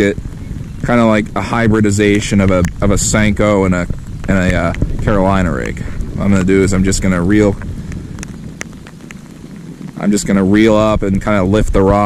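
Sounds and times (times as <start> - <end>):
low wind rumble: 0.0 - 12.0
rain falling: 0.0 - 12.0
raindrops tapping on microphone: 0.0 - 12.0.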